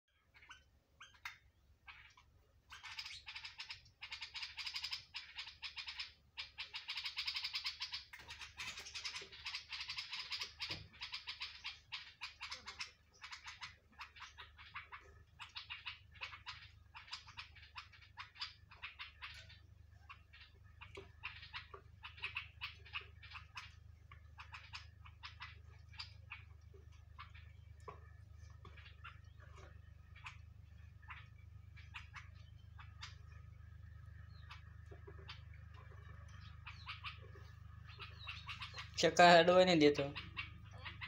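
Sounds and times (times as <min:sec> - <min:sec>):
small birds chirping: 0:00.1 - 0:41.0.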